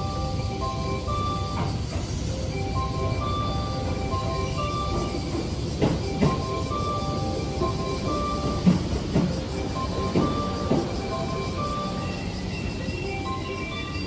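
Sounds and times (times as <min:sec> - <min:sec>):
chiming melody: 0:00.0 - 0:14.0
train rumbling: 0:00.0 - 0:14.0
wheels clunking over rail joints: 0:00.0 - 0:14.0.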